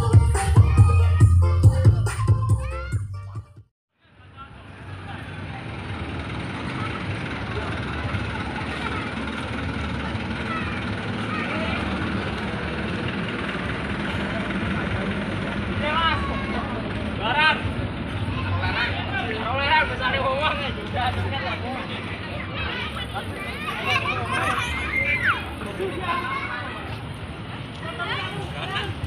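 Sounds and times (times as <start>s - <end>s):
vehicle engine rumbling: 4.1s - 29.0s.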